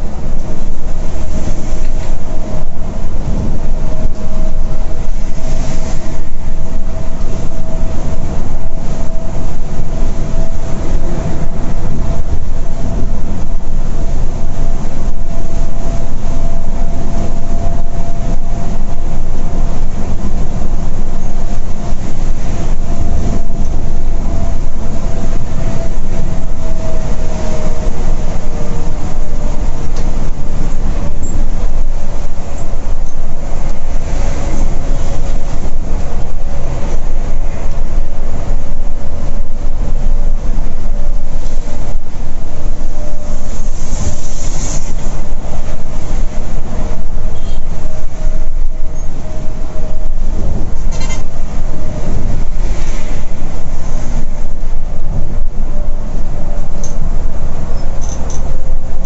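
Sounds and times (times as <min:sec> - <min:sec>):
bus road and engine rumble: 0:00.0 - 0:59.0.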